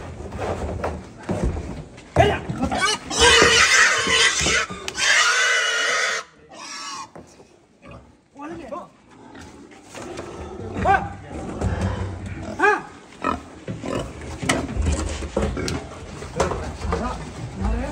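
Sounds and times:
pig squealing: 0:02.6 - 0:07.1
pig grunting: 0:09.1 - 0:17.0.

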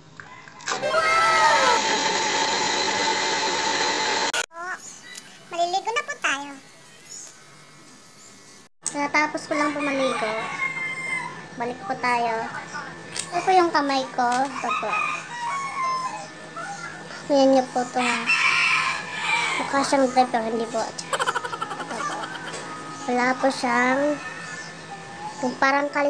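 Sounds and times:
long held animal call: 0:21.1 - 0:22.6
person speaking: 0:21.1 - 0:22.6.

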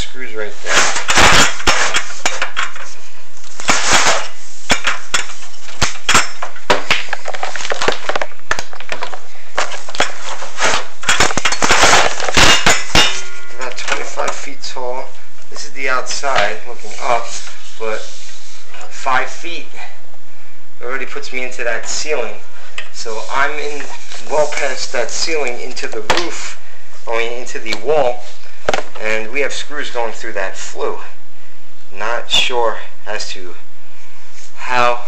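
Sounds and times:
person speaking: 0:00.0 - 0:01.1, 0:13.5 - 0:20.0, 0:20.8 - 0:31.2
rod scraping and knocking in metal pipe: 0:00.6 - 0:07.6.

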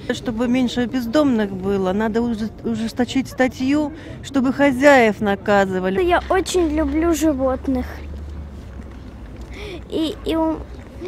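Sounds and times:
girl speaking: 0:06.0 - 0:08.1, 0:09.7 - 0:10.7.

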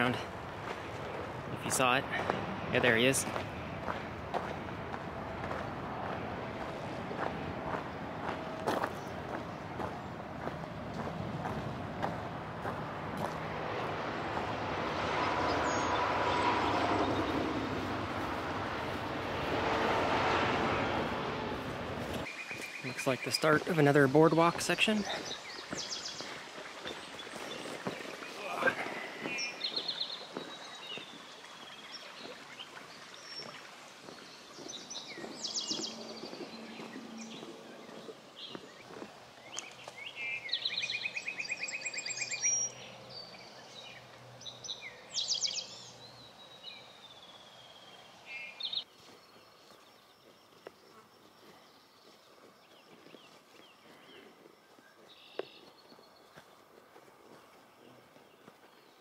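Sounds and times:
footsteps on wooden boardwalk: 0:00.3 - 0:01.5, 0:02.1 - 0:02.5, 0:03.2 - 0:14.6, 0:25.0 - 0:31.3, 0:32.2 - 0:40.0
songbirds singing: 0:14.2 - 0:17.7, 0:22.2 - 0:59.0.

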